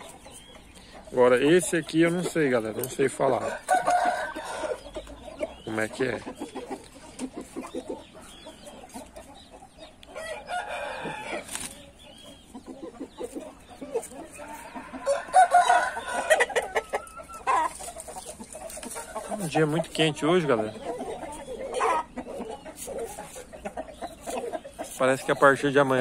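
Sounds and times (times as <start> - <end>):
roosters clucking: 0.0 - 26.0
rooster crowing: 3.5 - 4.8, 10.2 - 11.4, 14.4 - 16.5.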